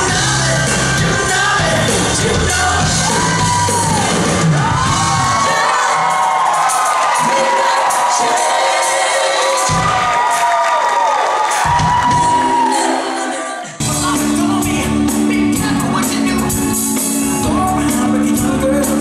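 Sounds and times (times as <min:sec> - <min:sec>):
live band playing: 0:00.0 - 0:10.5, 0:11.4 - 0:19.0
audience screaming and cheering: 0:00.0 - 0:19.0.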